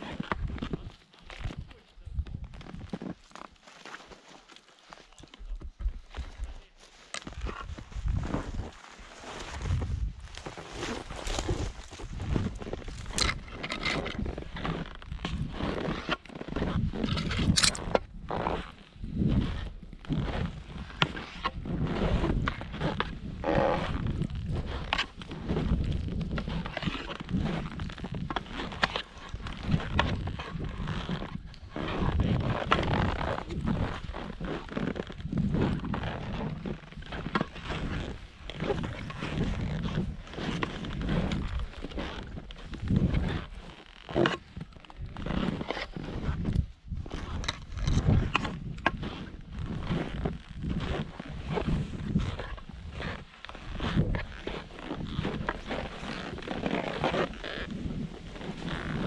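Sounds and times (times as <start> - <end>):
skis swishing through powder snow: 6.0 - 13.5, 18.3 - 47.5, 48.1 - 59.0
wind buffeting microphone: 7.4 - 8.7, 9.5 - 14.4.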